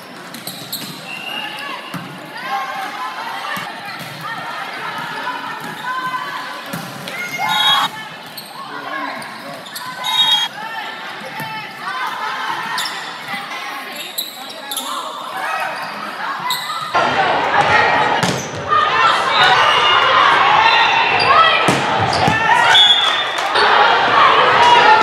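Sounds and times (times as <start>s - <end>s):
spectators' voices echoing: 0.0s - 25.0s
players calling: 2.8s - 18.1s.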